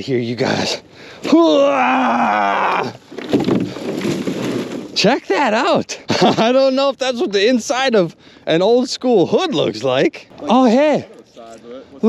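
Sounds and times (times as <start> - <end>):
man groaning: 1.3 - 3.0
breathy laughter: 6.0 - 6.5.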